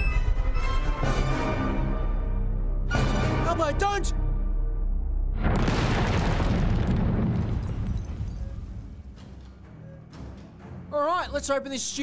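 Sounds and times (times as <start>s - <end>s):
explosion boom: 5.4s - 9.1s.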